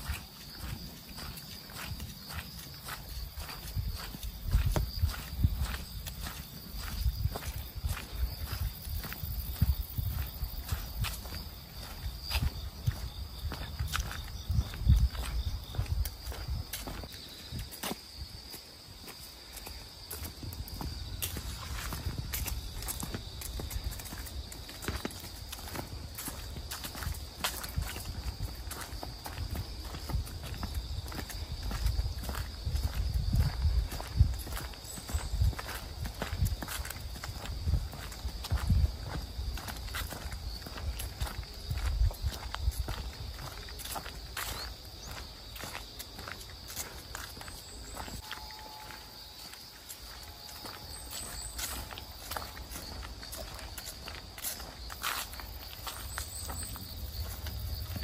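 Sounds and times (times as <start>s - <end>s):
footsteps on leaves: 0.0s - 58.0s.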